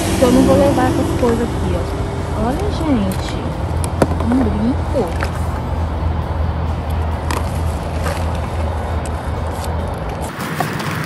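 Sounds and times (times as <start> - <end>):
steady low hum: 0.0 - 10.3.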